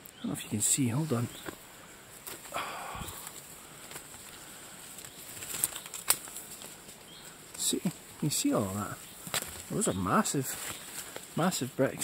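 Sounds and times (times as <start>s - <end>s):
leaves and branches rustling: 0.0s - 12.0s.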